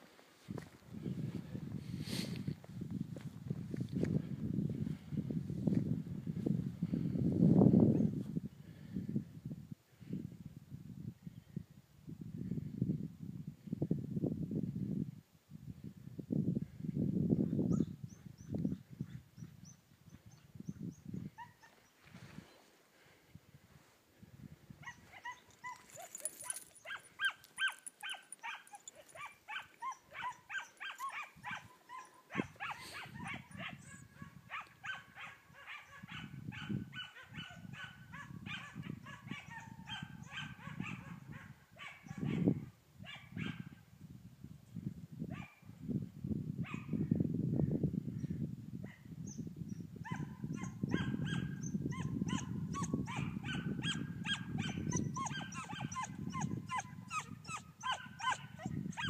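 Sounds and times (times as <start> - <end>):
hounds baying and yelping: 24.8 - 42.4, 50.0 - 59.0.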